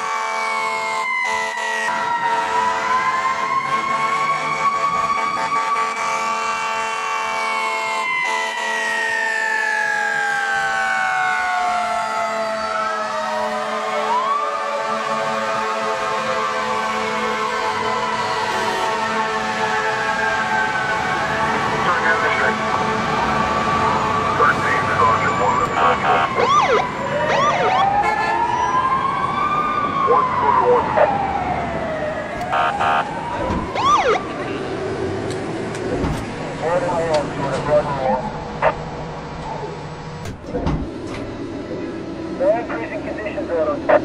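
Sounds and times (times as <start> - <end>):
emergency vehicle sirens: 0.0 - 44.0.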